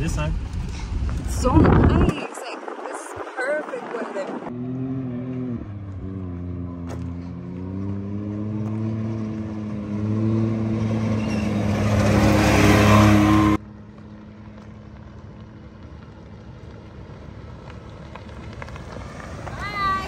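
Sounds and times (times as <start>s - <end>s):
pickup truck on dirt road: 0.0s - 20.0s
vehicle engine running: 5.9s - 20.0s.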